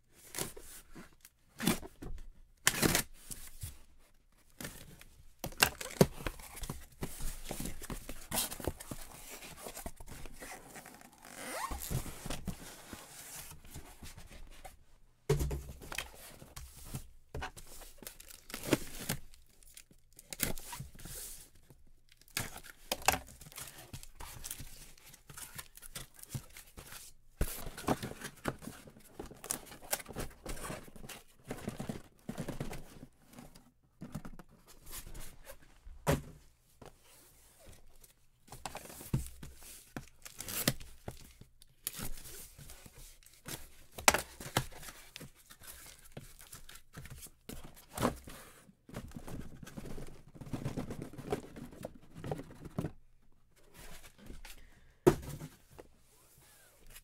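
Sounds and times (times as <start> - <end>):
cardboard scraping and rustling: 5.8 - 14.8
packing tape tearing: 11.1 - 11.9.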